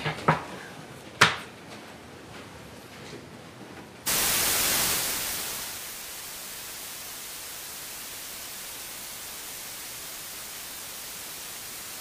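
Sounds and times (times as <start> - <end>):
white noise hiss: 4.0 - 12.0.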